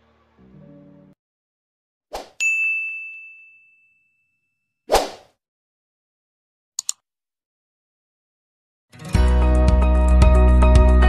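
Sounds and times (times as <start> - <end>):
bright bell-like ding: 2.4 - 4.4.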